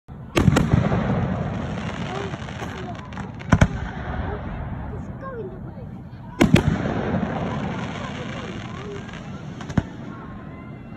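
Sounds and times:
lingering rumble: 0.1 - 10.9.

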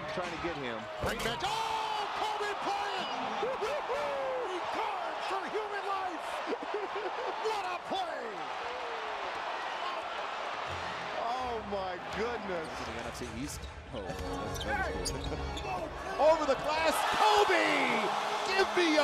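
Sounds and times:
crowd noise: 0.0 - 19.0.

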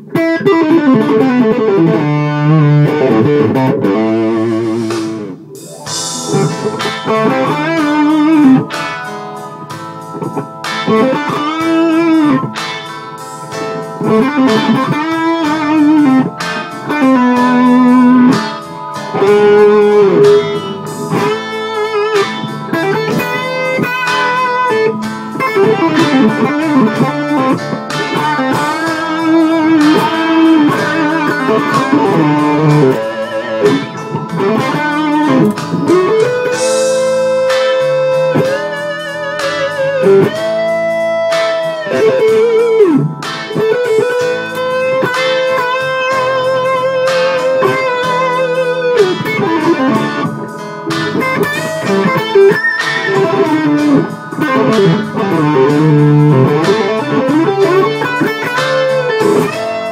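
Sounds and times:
electric guitar lead melody: 0.0 - 59.9.

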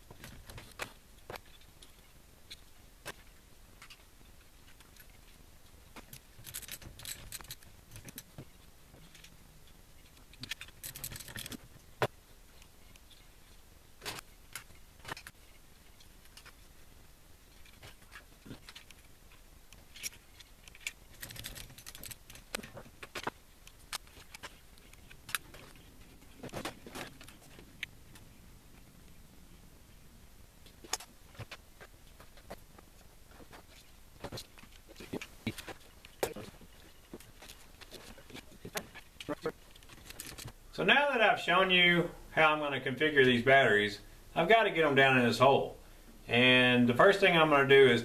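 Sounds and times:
metal hardware clinking: 6.1 - 8.3, 10.3 - 11.6, 19.9 - 23.2.

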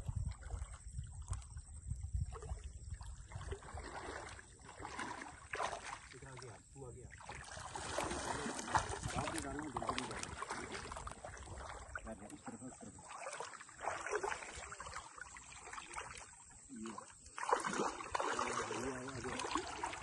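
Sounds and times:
water sloshing around wading legs: 0.0 - 20.0.

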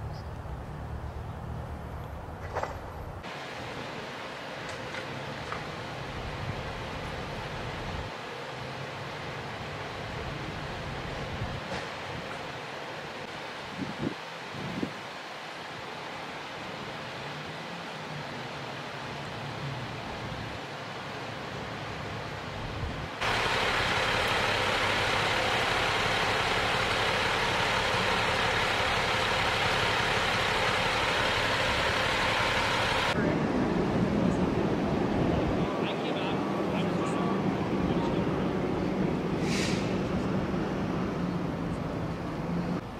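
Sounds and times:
vehicle hum: 0.0 - 13.3, 16.8 - 42.9
fire engine running: 1.6 - 13.3, 20.1 - 42.9
low engine rumble: 22.5 - 42.9.

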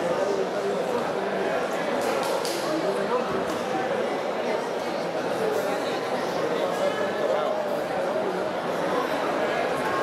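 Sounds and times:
crowd talking and calling out: 0.0 - 10.0.

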